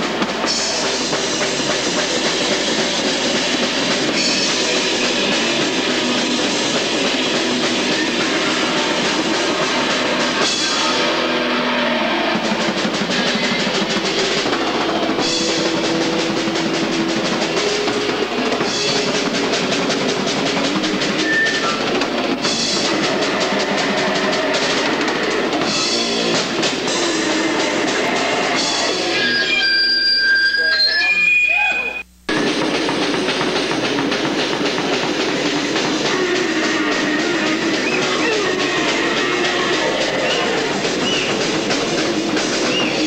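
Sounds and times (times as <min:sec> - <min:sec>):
fast drumming and cymbals: 0:00.0 - 0:43.0
heavy metal band playing: 0:00.0 - 0:43.0.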